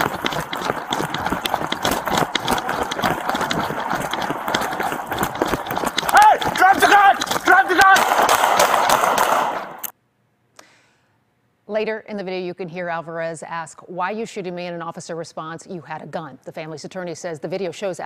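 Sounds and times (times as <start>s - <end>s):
clothing brushing microphone: 0.0s - 9.7s
running footfalls: 0.0s - 9.9s
person shouting: 6.1s - 8.2s.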